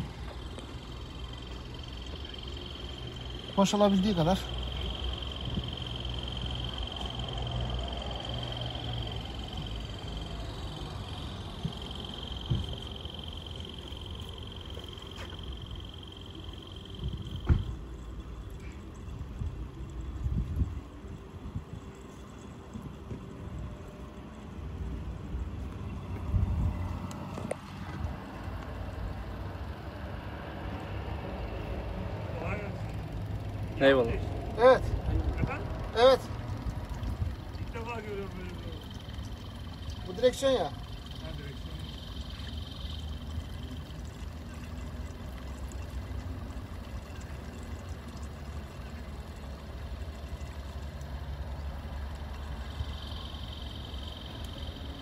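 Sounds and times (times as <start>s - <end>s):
diaphragm pump whining: 0.0s - 55.0s
low hum: 0.0s - 55.0s.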